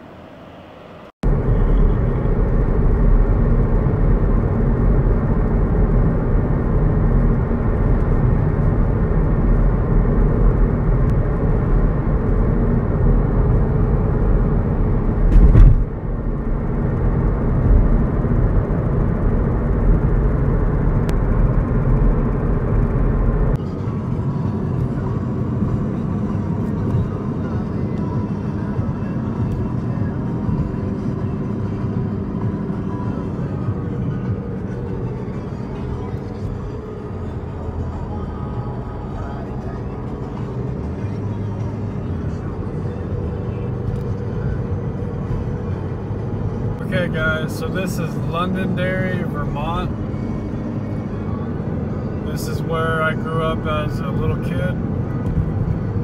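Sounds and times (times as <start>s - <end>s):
car road and wind noise: 0.0s - 56.0s.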